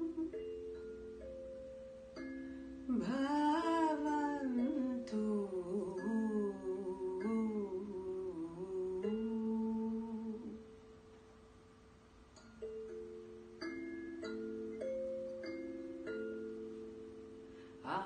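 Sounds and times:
person humming a slow melody: 0:00.0 - 0:10.8.

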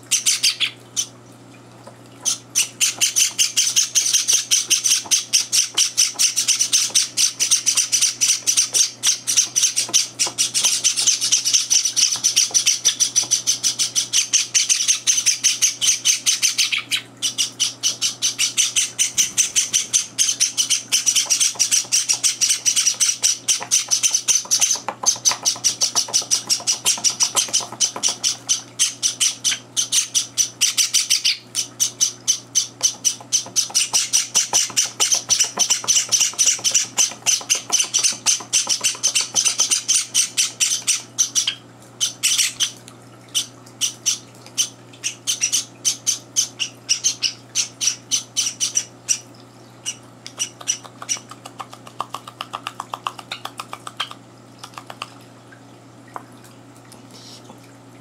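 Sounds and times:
chicks' high begging chirps: 0:02.2 - 0:52.1.

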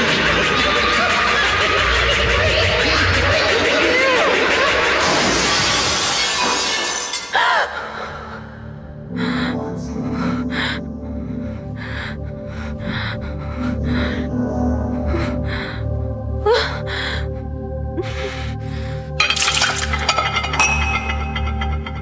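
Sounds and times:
low sustained film score: 0:07.6 - 0:22.0.

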